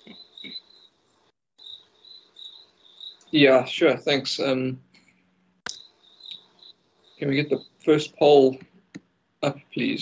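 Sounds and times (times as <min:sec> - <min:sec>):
faint high-pitched whine: 0:00.0 - 0:10.0.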